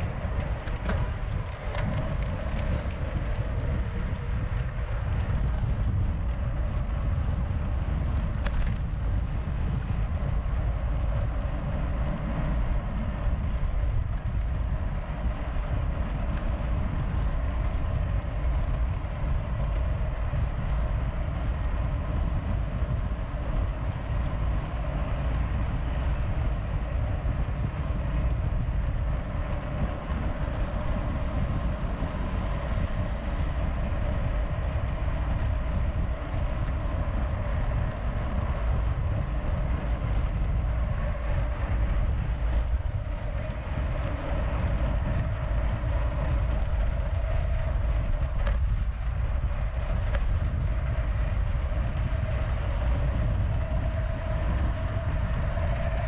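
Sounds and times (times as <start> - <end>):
tyre rumble on road: 0.0 - 56.0
wind buffeting microphone: 0.0 - 56.0.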